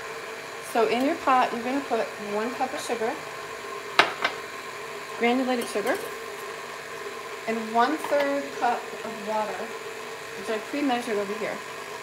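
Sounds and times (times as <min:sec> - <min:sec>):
stand mixer humming: 0:00.0 - 0:12.0.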